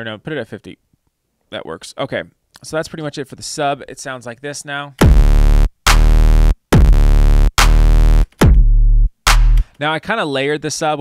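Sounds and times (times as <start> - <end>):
low synth bass notes: 5.0 - 9.7.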